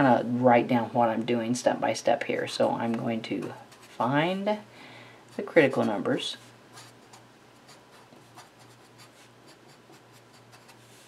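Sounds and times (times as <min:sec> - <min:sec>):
marker writing on paper: 0:06.7 - 0:11.0.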